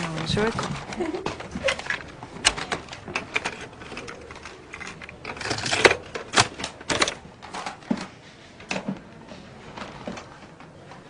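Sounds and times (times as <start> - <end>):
cassette cases scraping shuffle: 0.0 - 10.4
plastic cassette cases clacking: 0.6 - 8.1.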